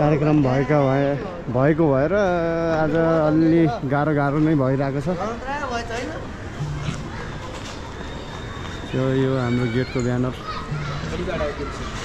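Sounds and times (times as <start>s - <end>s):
distant voices of people and children: 5.5s - 12.0s.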